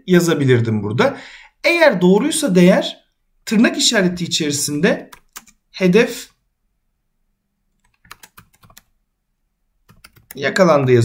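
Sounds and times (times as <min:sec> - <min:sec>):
computer keyboard keys clicking: 0:05.1 - 0:05.6, 0:07.8 - 0:08.9, 0:09.9 - 0:10.4.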